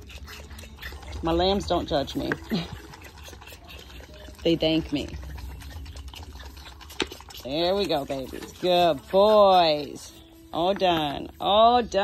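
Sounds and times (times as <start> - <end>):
lamb sucking and slurping: 0.0 - 12.0.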